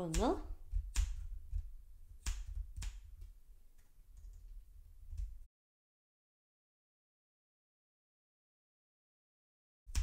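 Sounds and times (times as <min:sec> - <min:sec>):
scissors snipping yarn: 0:00.0 - 0:03.3.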